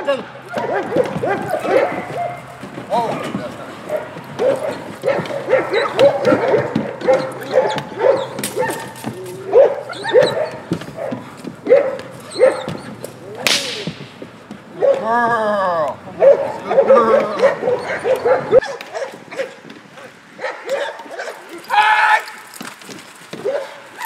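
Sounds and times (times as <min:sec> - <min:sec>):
dog whining yelps: 0:00.5 - 0:02.5, 0:03.9 - 0:13.4, 0:16.2 - 0:19.6
sharp cracks and slaps: 0:00.5 - 0:15.1.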